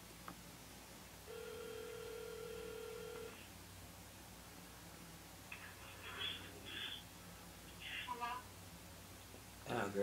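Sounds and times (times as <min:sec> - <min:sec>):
telephone ringback tone: 0:01.3 - 0:03.4.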